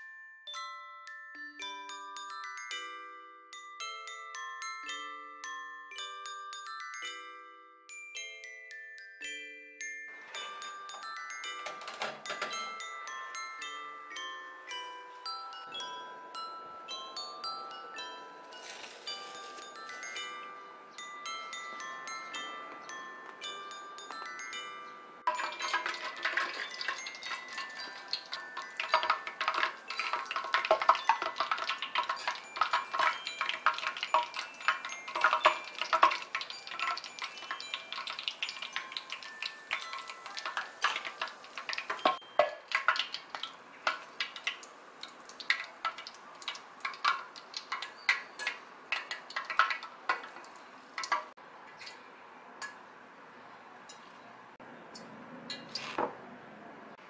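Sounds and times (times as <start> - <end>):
doughnuts sizzling in hot oil: 25.3 - 52.0.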